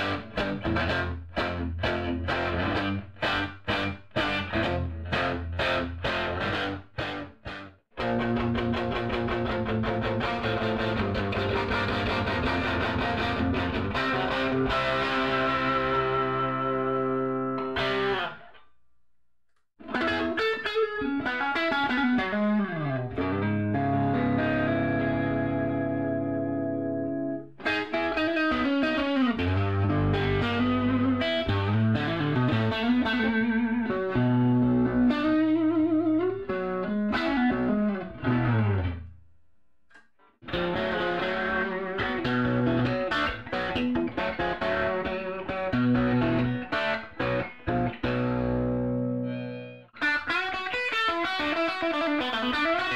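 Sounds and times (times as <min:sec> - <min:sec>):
electric guitar chords and notes: 0:00.0 - 0:18.6, 0:19.8 - 0:39.1, 0:40.4 - 0:52.9.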